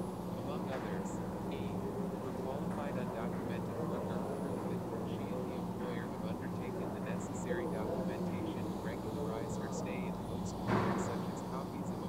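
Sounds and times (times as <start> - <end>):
low hum and rumble: 0.0 - 12.0
synthetic text-to-speech voice: 2.4 - 12.0.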